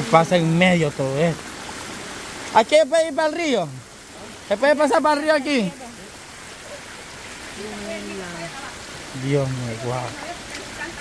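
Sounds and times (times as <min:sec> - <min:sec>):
steady rain falling: 0:00.0 - 0:11.0.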